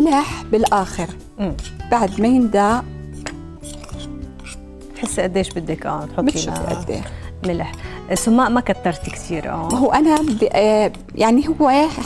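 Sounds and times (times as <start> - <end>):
soft background music: 0.0 - 12.0
metal spoon scraping glass bowl: 0.2 - 11.0.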